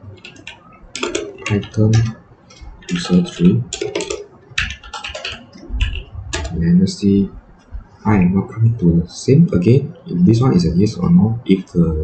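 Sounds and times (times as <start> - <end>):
typing on computer keyboard: 0.1 - 6.7.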